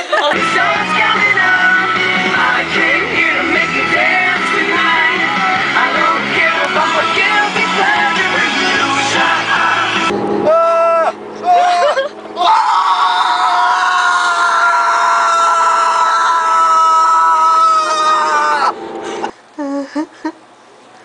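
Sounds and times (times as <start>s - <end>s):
person screaming: 10.4s - 18.8s.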